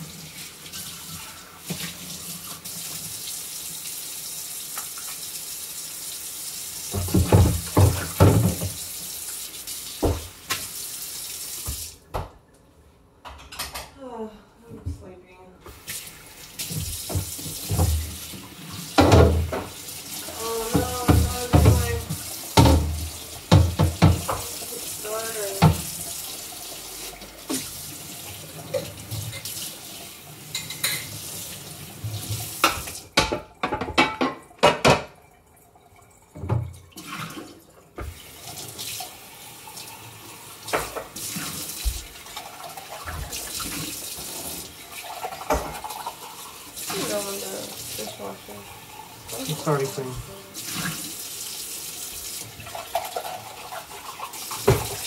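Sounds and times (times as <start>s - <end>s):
tap running into sink: 6.8s - 8.9s, 10.0s - 10.8s, 16.6s - 19.8s, 20.5s - 24.7s, 25.4s - 26.0s, 32.0s - 35.2s, 38.0s - 38.3s, 40.7s - 42.2s, 45.3s - 46.1s, 54.5s - 55.0s
dishes clinking in sink: 6.9s - 8.8s, 19.0s - 19.8s, 20.4s - 24.6s, 25.5s - 25.9s, 28.6s - 29.6s, 30.5s - 31.2s, 32.6s - 35.2s, 45.3s - 46.2s, 54.6s - 55.0s.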